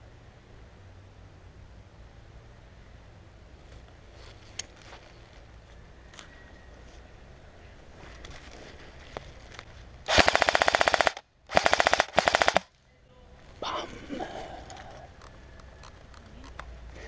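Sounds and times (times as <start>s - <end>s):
airsoft rifle full auto bursts: 10.1s - 12.7s.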